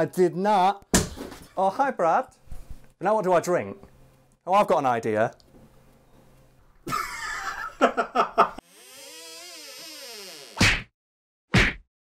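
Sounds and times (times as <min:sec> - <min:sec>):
man laughing: 0:06.9 - 0:08.6.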